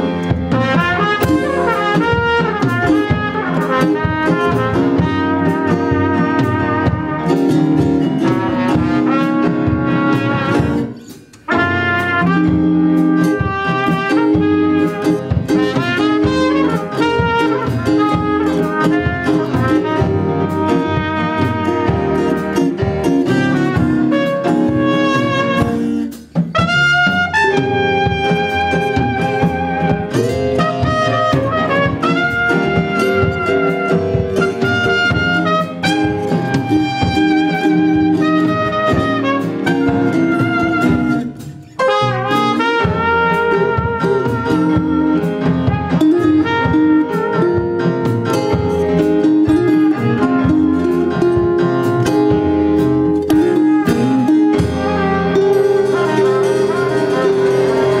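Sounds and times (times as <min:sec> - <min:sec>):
drum kit: 0:00.0 - 0:58.0
guitar: 0:00.0 - 0:58.0
piano: 0:00.0 - 0:58.0
trumpet lead line: 0:00.0 - 0:58.0
upright bass: 0:00.0 - 0:58.0.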